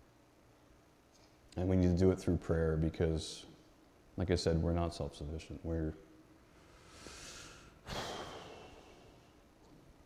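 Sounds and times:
man breathing into microphone: 6.6 - 9.2.

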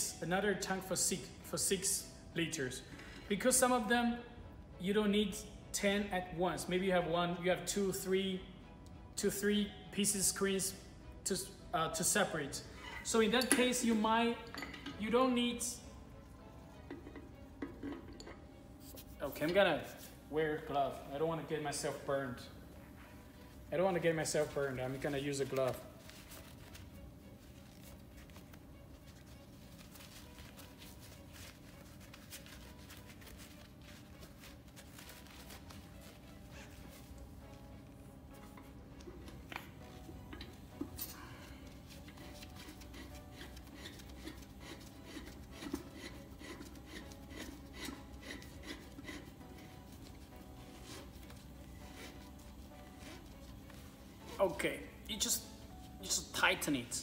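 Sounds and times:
gloved hands clicking and rubbing: 38.4 - 53.9.

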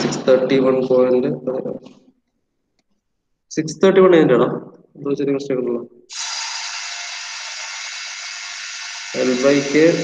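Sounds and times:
man speaking: 0.0 - 2.0, 3.5 - 6.0, 9.2 - 10.0.

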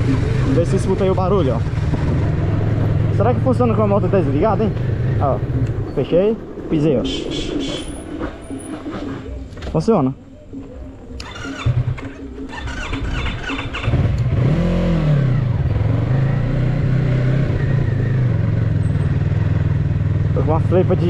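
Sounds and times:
motorcycle engine starting and revving: 0.0 - 6.7, 10.5 - 21.0.

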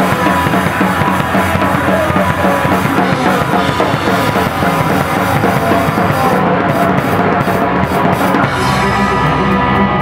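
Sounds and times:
drum kit with cymbals: 0.0 - 10.0
electric bass: 0.0 - 10.0
electric guitar: 0.0 - 10.0.

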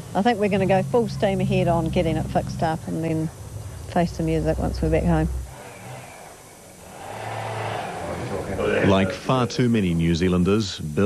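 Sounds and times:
motor vehicle passing: 0.0 - 9.7
steady low hum: 0.0 - 11.0.

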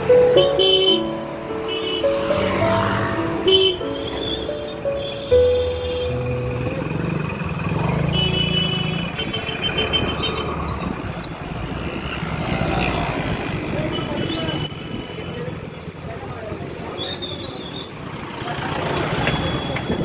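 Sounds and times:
traffic noise: 0.0 - 20.0
motorcycle engine: 2.1 - 13.9.

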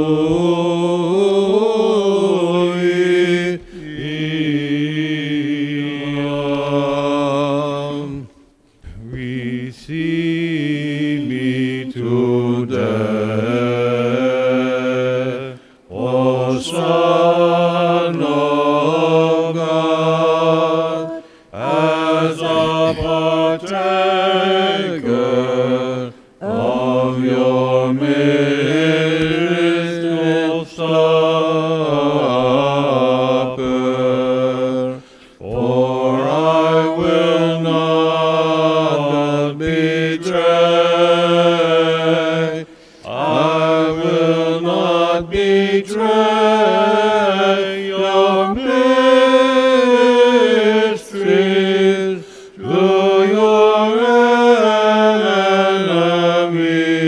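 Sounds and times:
chanting melody: 0.0 - 57.0.

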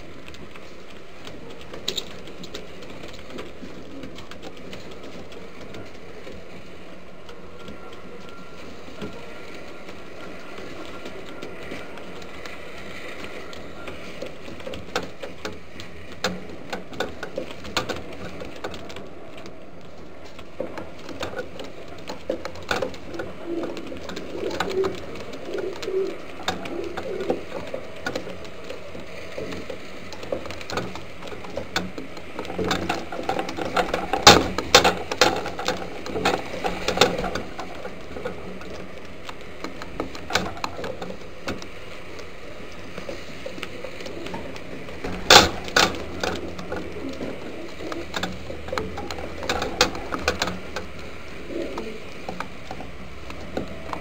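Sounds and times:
clicks and taps of birds moving: 0.0 - 54.0
pigeons cooing: 0.0 - 54.0.

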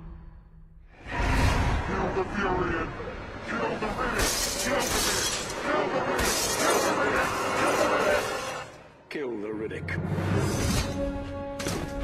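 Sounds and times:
dramatic film score music: 0.0 - 12.0.

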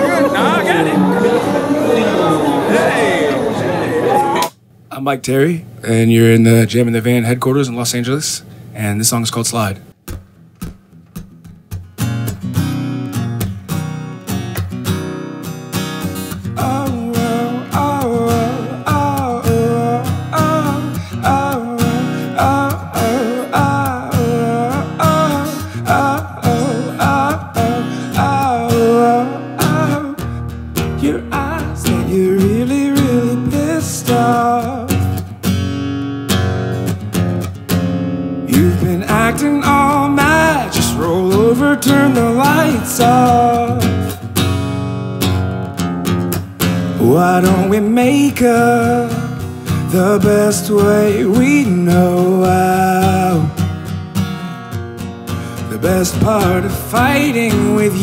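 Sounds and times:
acoustic guitar strumming: 10.0 - 58.0
man singing wordless melody: 16.4 - 35.2, 38.5 - 44.0, 47.0 - 53.6, 55.6 - 58.0.

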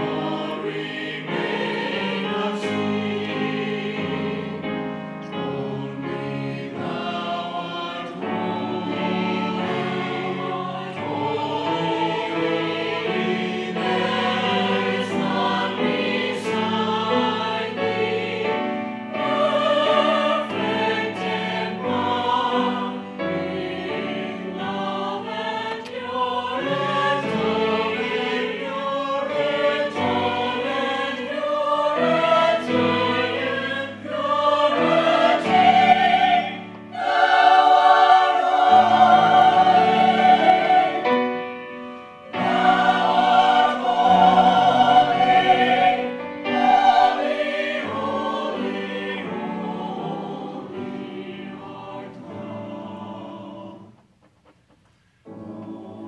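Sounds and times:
church choir singing in harmony: 0.0 - 54.3, 55.2 - 56.0.

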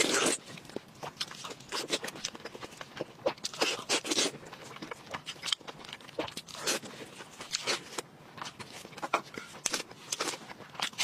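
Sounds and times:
wet chewing and smacking: 0.0 - 11.0.

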